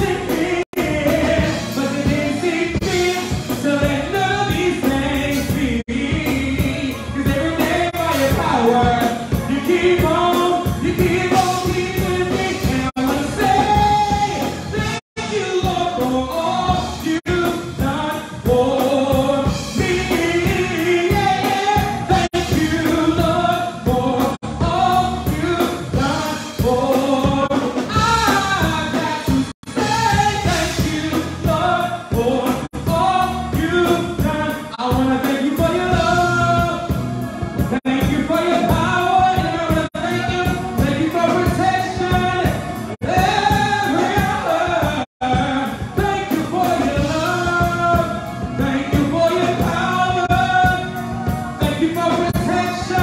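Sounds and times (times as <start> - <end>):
instrumental backing music: 0.0 - 53.0
man singing into a microphone: 0.0 - 53.0.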